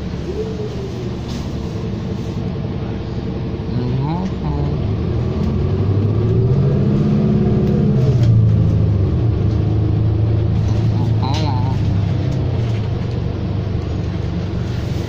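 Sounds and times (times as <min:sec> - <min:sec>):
bus engine drone from inside: 0:00.0 - 0:15.0.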